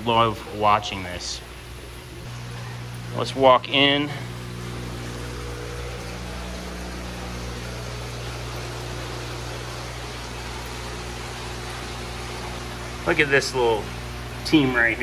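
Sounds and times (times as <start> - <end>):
electrical hum: 0.0 - 15.0
even hiss of pumps: 0.0 - 15.0.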